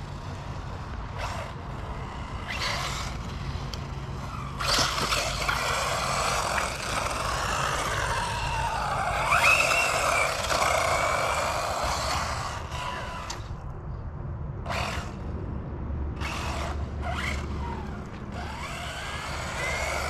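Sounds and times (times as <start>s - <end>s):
electric rc car motor whine: 0.0s - 13.7s, 14.6s - 15.3s, 16.2s - 20.0s.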